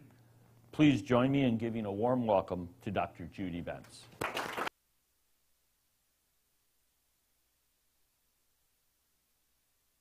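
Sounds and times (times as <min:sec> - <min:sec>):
audience applause: 0:04.2 - 0:04.7.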